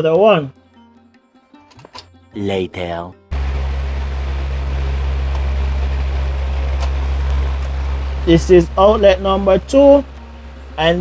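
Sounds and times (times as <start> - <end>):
faint hum: 3.3 - 11.0
fan blowing into microphone: 3.3 - 11.0.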